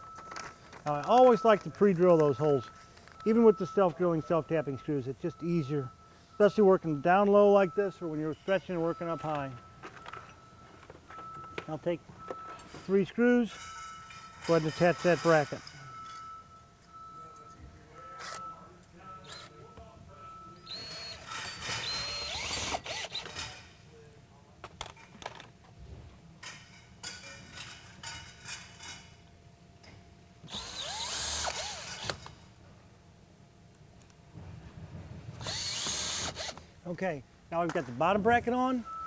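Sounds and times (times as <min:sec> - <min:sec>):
cordless drill whining: 0:20.7 - 0:23.4, 0:30.5 - 0:32.2, 0:35.4 - 0:36.6.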